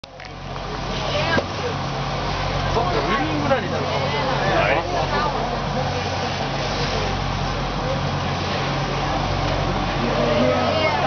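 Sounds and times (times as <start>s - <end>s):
steady low hum: 0.0s - 11.0s
indistinct chatter of voices: 0.2s - 11.0s.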